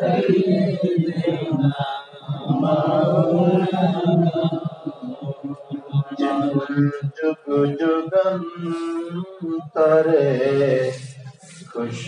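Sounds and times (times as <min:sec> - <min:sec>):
man chanting: 0:00.0 - 0:12.0.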